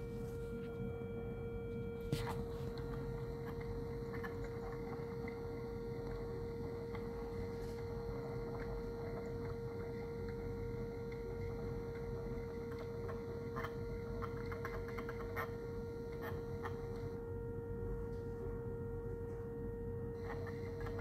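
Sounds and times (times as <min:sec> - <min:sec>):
siren steady tone: 0:00.0 - 0:21.0.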